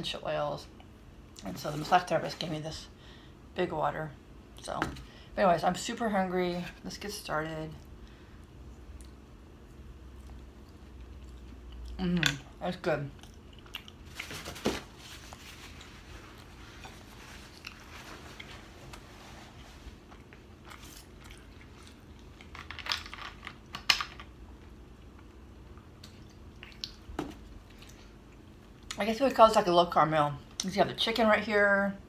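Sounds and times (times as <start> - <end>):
person chewing food: 7.8 - 12.0, 13.1 - 14.4, 15.2 - 22.7, 24.6 - 29.0.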